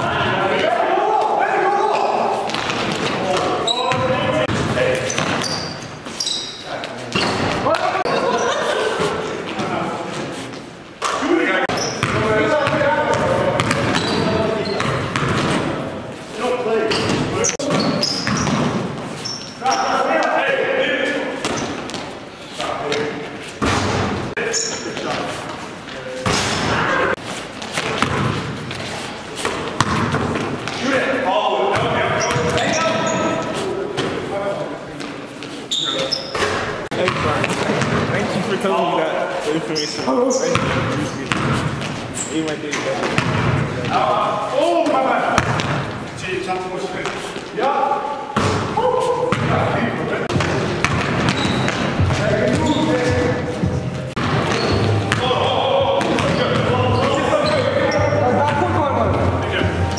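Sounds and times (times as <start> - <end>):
basketball bouncing on court: 2.5 - 5.7, 11.7 - 15.8, 16.9 - 19.0, 27.8 - 28.7, 29.4 - 30.9, 31.7 - 33.2, 36.4 - 38.1, 40.5 - 42.0, 43.0 - 44.0, 45.4 - 46.0, 48.4 - 48.7, 49.3 - 49.6, 50.3 - 59.3.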